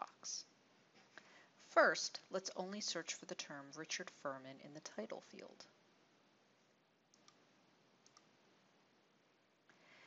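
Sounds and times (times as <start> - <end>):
computer mouse clicks: 7.1 - 7.4, 8.0 - 8.3.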